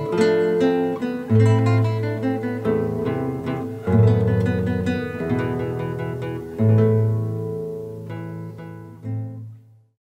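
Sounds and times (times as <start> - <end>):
fingerpicked classical guitar: 0.0 - 10.0.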